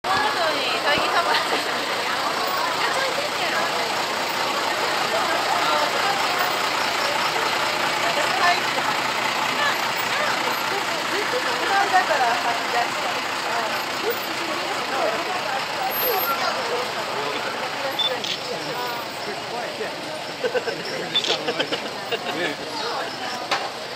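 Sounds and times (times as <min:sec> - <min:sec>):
many voices talking: 0:00.0 - 0:23.9
truck engine running: 0:00.0 - 0:23.9.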